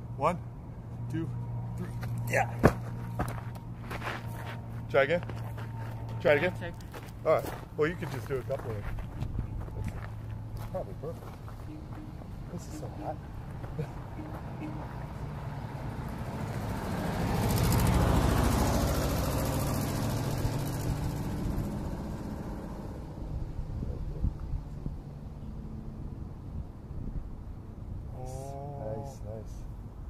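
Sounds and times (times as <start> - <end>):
vehicle passing by: 0.0 - 29.6.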